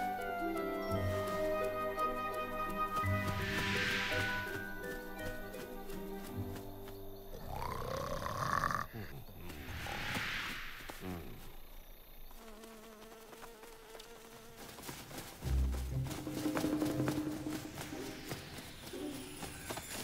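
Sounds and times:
soft cartoon music: 0:00.0 - 0:08.0, 0:15.4 - 0:20.0
whoosh: 0:09.6 - 0:11.0.

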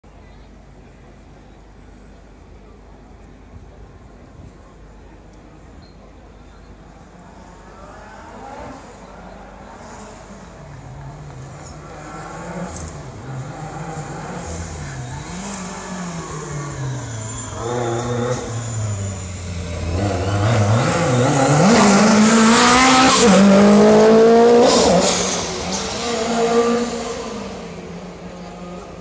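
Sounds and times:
rally car engine revving hard: 0:11.4 - 0:29.0.

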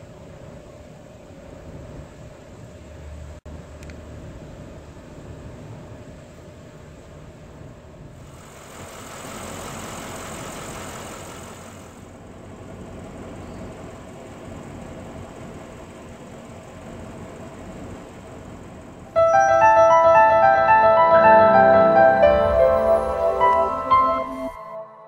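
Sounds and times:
broad hiss: 0:08.2 - 0:12.0
car engine idling: 0:08.2 - 0:19.1.

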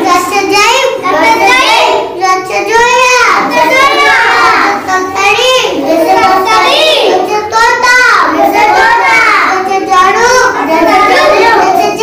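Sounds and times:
children chanting in sing-song: 0:00.0 - 0:12.0.

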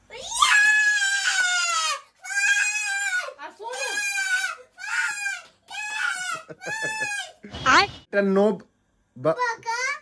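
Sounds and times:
boy whining and crying: 0:00.2 - 0:07.5.

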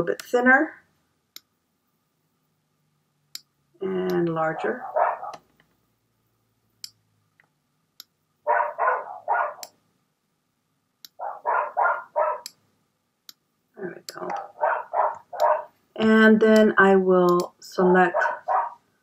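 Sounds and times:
dog barking: 0:04.6 - 0:05.4, 0:08.5 - 0:09.7, 0:11.2 - 0:12.5, 0:14.3 - 0:15.7, 0:18.1 - 0:18.8
computer mouse clicks: 0:15.4 - 0:15.6, 0:16.5 - 0:17.6.

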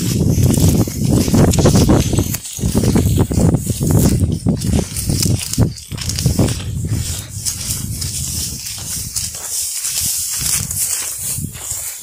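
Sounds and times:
footsteps on dry grassy trail: 0:00.0 - 0:12.0.

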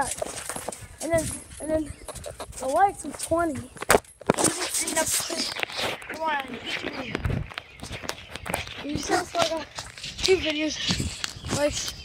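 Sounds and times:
footsteps: 0:00.0 - 0:12.0
scattered clicks: 0:00.0 - 0:12.0.

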